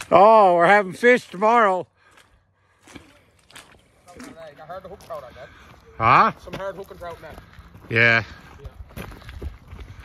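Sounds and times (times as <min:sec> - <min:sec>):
faint footsteps on a trail: 0:00.0 - 0:10.0.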